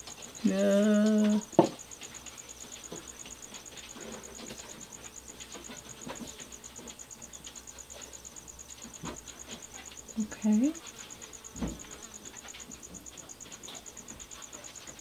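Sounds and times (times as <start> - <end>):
faint pulsing high-pitched whine: 0.0 - 15.0.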